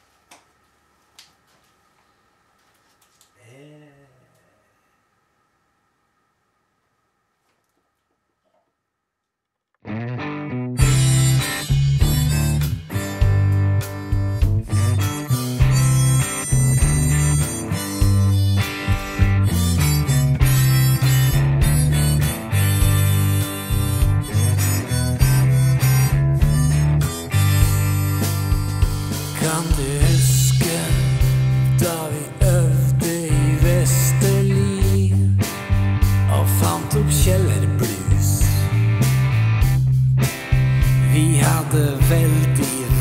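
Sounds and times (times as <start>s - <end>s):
bass guitar: 9.8s - 43.0s
electric guitar: 9.8s - 43.0s
rock music: 9.9s - 43.0s
harmonica: 10.8s - 39.1s, 40.6s - 43.0s.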